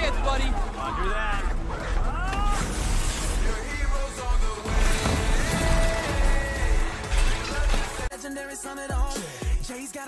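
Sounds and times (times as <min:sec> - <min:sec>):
loud film music: 0:00.0 - 0:10.0.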